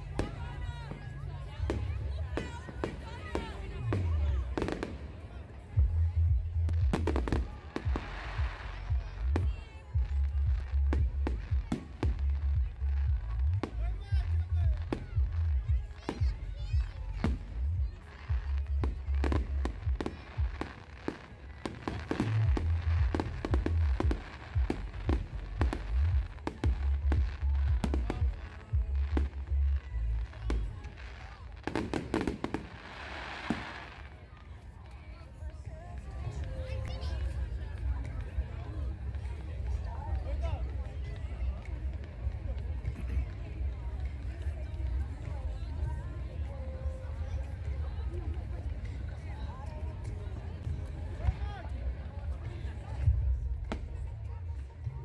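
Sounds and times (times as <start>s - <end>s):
fireworks bangs and crackling: 0.0s - 55.0s
deep low rumble: 5.8s - 20.6s, 22.2s - 31.1s.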